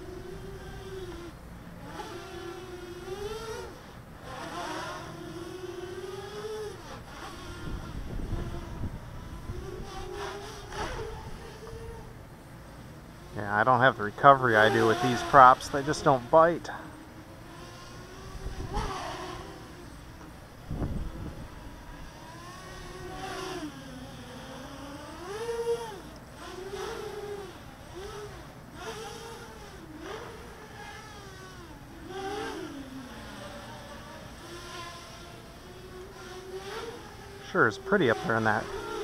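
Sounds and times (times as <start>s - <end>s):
quadcopter buzzing whine: 0.0s - 39.0s.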